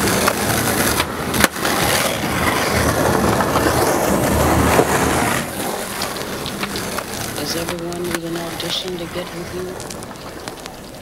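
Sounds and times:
skateboard clacks: 0.0 - 11.0
skateboard wheels rolling on concrete: 0.0 - 11.0.

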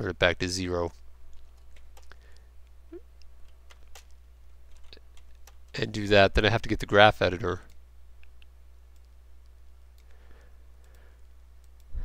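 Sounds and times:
low steady hum: 0.0 - 12.0
computer mouse clicks: 7.7 - 10.2, 10.8 - 12.0.

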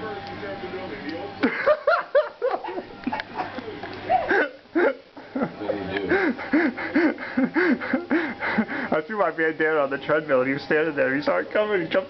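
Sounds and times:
man laughing: 1.4 - 8.9.

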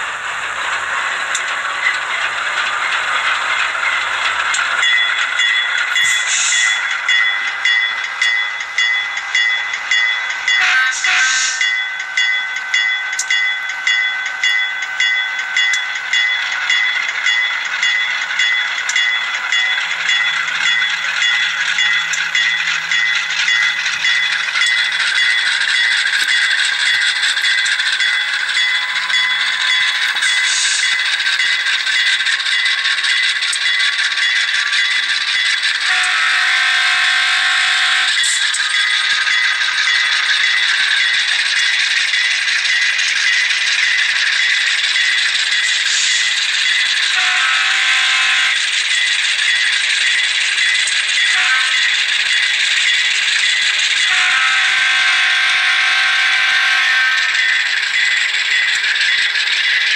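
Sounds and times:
model locomotive diesel engine sound: 0.0 - 59.9
model train rattling on track: 0.0 - 59.9
train horn: 10.6 - 11.6, 35.9 - 38.1, 47.2 - 48.5, 51.3 - 51.9, 54.0 - 57.3.

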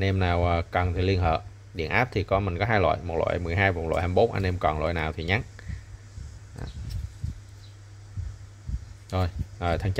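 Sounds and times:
low steady hum: 0.0 - 9.9.

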